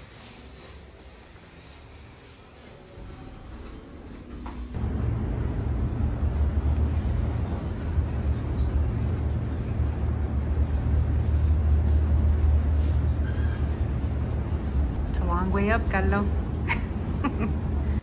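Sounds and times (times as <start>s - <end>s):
elevator deep rumble: 2.8s - 18.0s.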